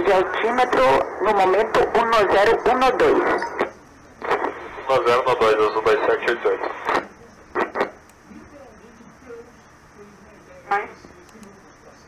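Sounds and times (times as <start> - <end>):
voice over radio: 0.0 - 7.0
short radio burst: 0.0 - 8.0
radio static hiss: 0.0 - 12.0.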